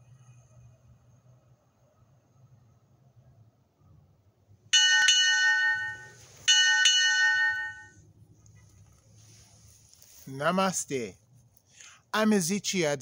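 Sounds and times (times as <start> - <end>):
small high-pitched bell ringing: 4.8 - 8.0.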